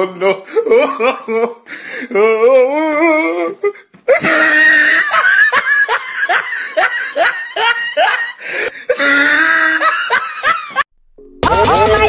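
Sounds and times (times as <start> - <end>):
person laughing hard: 0.0 - 2.4, 4.1 - 10.9.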